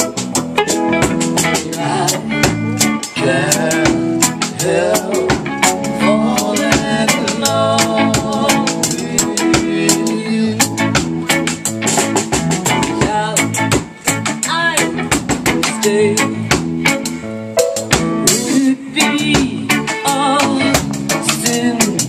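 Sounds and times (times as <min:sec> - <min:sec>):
drum kit steady beat: 0:00.0 - 0:22.0
electric guitar: 0:00.0 - 0:22.0
keyboard: 0:00.0 - 0:22.0.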